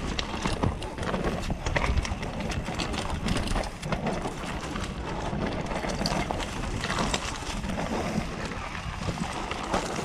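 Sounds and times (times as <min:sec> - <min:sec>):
bike clacking and rattling: 0:00.0 - 0:10.0
bike tyre rumble on dirt: 0:00.0 - 0:10.0.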